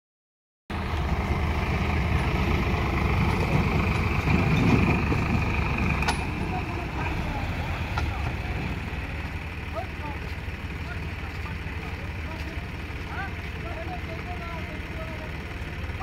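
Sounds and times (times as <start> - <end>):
diesel engine rumbling: 0.7 - 16.0.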